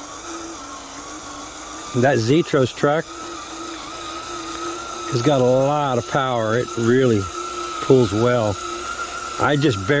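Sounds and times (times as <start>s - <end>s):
electric motor and gearbox whining: 0.0s - 10.0s.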